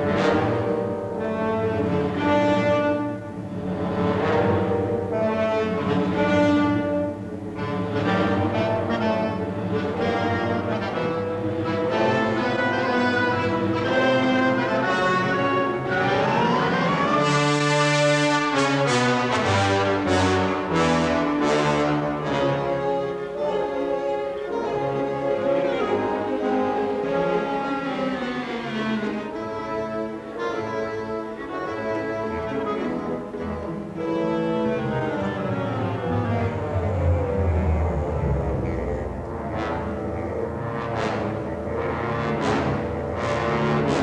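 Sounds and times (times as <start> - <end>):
orchestral music led by brass: 0.0 - 44.0.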